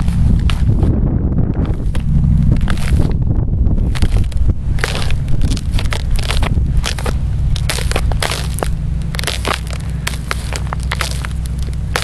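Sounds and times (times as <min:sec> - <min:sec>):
ice crackling underfoot: 0:00.0 - 0:12.0
low rumble: 0:00.0 - 0:12.0.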